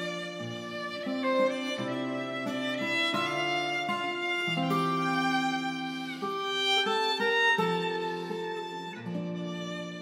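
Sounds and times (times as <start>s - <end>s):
acoustic guitar accompaniment: 0.0s - 10.0s
violin bowed notes: 0.0s - 10.0s.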